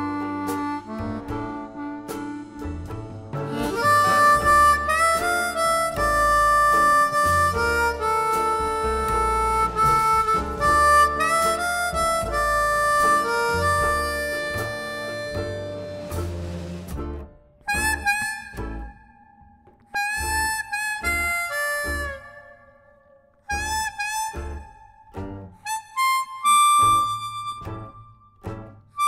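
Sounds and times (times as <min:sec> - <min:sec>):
blues harmonica with bends: 0:00.0 - 0:29.0.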